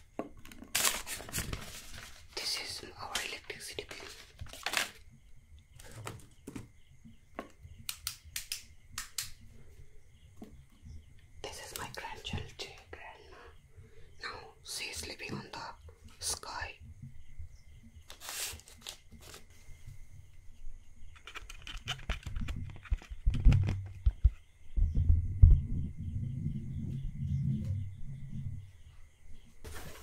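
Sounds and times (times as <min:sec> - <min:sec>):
paper crinkling: 0:00.4 - 0:02.4, 0:03.1 - 0:05.0, 0:18.1 - 0:19.5
scratching and rustling: 0:00.4 - 0:05.0, 0:18.0 - 0:19.7, 0:21.1 - 0:24.5, 0:29.6 - 0:30.0.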